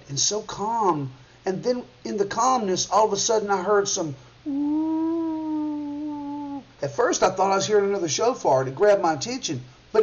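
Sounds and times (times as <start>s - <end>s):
man humming a long tone: 4.5s - 6.6s.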